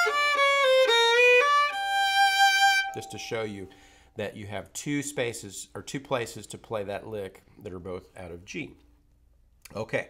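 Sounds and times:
solo fiddle playing bluesy lick: 0:00.0 - 0:03.8.

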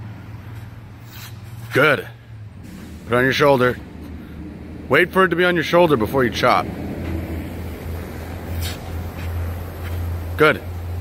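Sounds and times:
low outdoor rumble: 0:00.0 - 0:11.0
short hissy swish: 0:01.0 - 0:01.8, 0:08.4 - 0:10.0.

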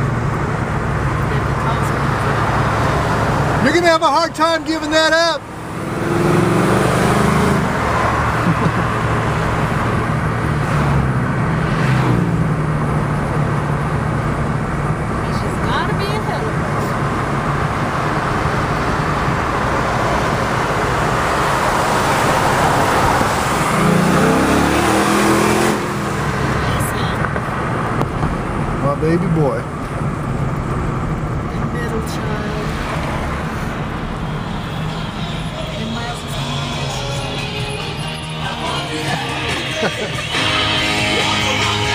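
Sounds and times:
car engine and tyre noise: 0:00.0 - 0:41.9
engine revving: 0:04.8 - 0:28.0, 0:30.4 - 0:41.9.

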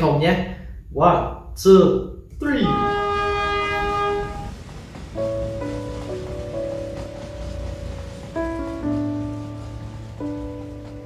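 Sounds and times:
steam locomotive whistle: 0:02.4 - 0:06.4.

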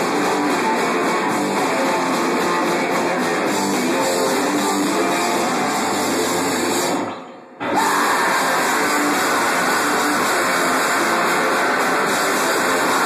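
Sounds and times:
distorted electric guitar: 0:00.0 - 0:13.0
drums: 0:00.0 - 0:13.0.

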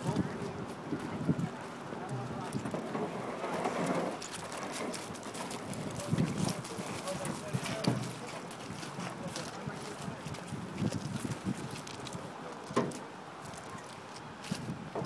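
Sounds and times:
people talking: 0:00.0 - 0:02.8, 0:05.7 - 0:10.6
canoe knocking on gravel: 0:02.1 - 0:09.2.

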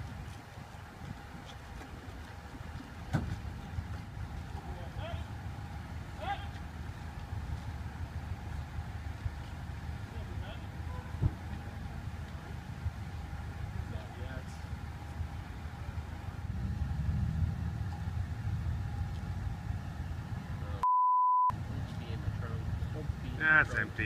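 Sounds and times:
traffic rumble: 0:00.0 - 0:20.9, 0:21.5 - 0:24.0.

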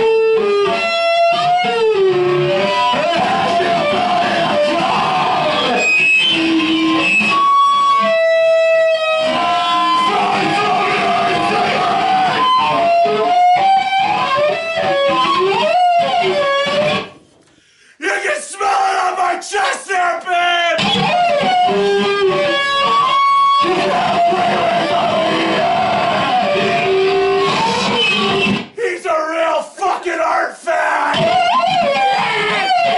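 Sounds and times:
processed shouted vocals: 0:02.7 - 0:05.9, 0:09.2 - 0:13.3, 0:17.9 - 0:20.9, 0:23.6 - 0:31.4.

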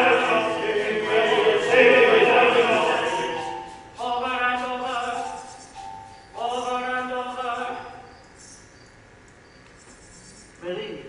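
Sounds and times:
grasshoppers chirping: 0:00.0 - 0:11.0.

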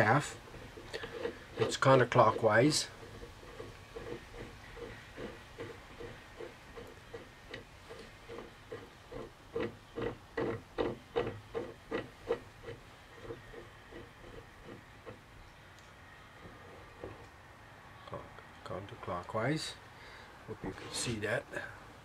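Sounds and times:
rhythmic metal creaking of tool: 0:00.0 - 0:15.5, 0:16.4 - 0:17.3.

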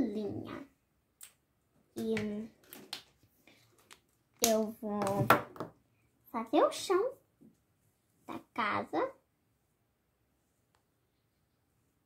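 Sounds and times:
child's voice: 0:00.0 - 0:00.7, 0:02.0 - 0:02.6, 0:04.4 - 0:05.3, 0:06.3 - 0:07.2, 0:08.3 - 0:09.2.

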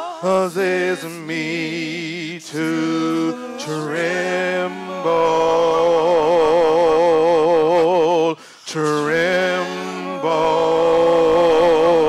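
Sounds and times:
choir singing with vibrato: 0:00.0 - 0:12.0.

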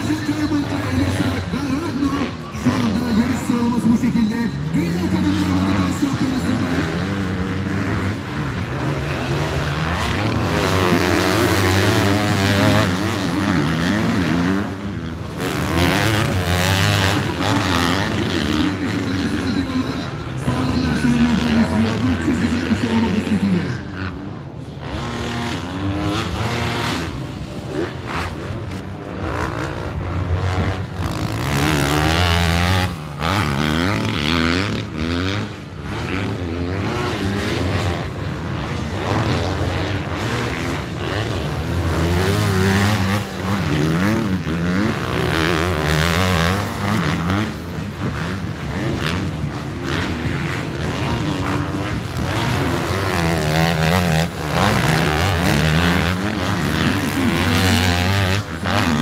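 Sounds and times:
motocross bike engines revving: 0:00.0 - 0:59.0.

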